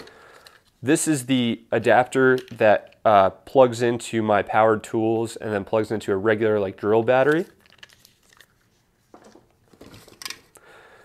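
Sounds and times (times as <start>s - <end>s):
tools knocking and rustling: 9.0s - 10.5s.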